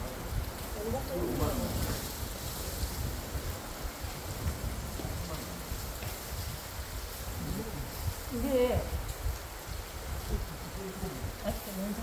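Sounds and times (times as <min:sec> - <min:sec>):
outdoor hiss: 0:00.0 - 0:12.0
wind rumbling on microphone: 0:00.0 - 0:12.0.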